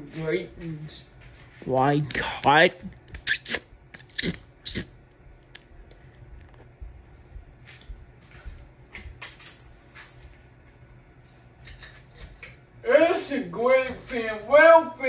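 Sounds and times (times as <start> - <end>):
metal pull chains jangling: 9.2 - 10.4.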